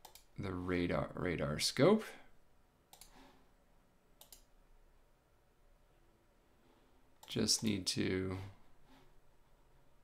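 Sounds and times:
computer mouse clicks: 0.0 - 0.3, 2.9 - 3.3, 4.2 - 4.5.

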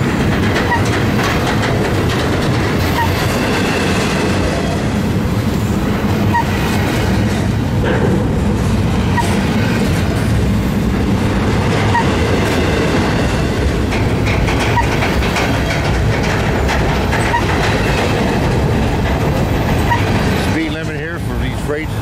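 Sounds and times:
train wheels clattering on rails: 0.0 - 22.0.

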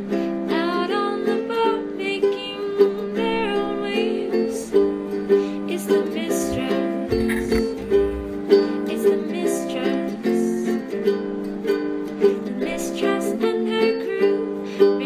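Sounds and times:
plucked-string tune with steady beat: 0.0 - 15.0.

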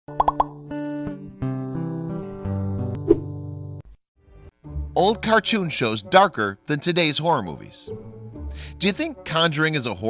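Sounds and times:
cartoon pops: 0.2 - 0.5.

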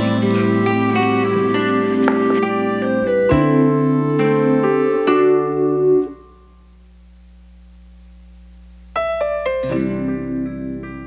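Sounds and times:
keyboard chords: 0.0 - 6.6, 9.0 - 11.0
quiet steady hum: 0.0 - 11.0.

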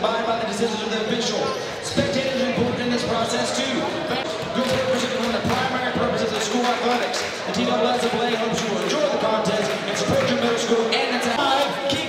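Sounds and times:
people talking in echoing gym: 0.0 - 12.0.

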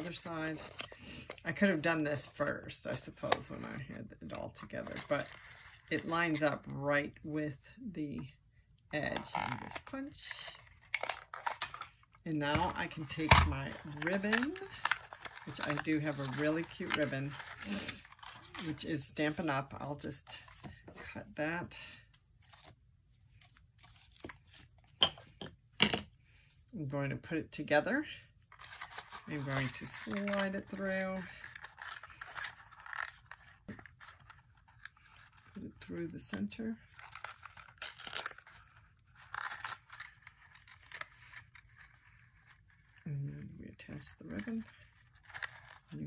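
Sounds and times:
ribbon rustling: 10.5 - 19.4, 28.4 - 35.6.

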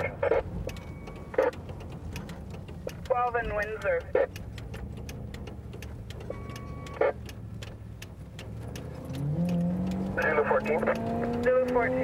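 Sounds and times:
engine and road noise: 0.0 - 12.0.

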